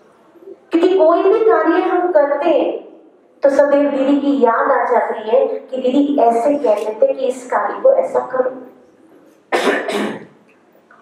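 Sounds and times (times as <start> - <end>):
woman coughing into microphone: 9.5 - 10.4.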